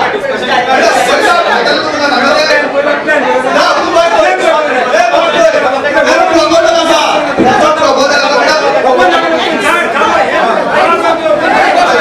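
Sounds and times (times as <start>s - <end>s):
crowd of argumentative voices: 0.0s - 12.0s.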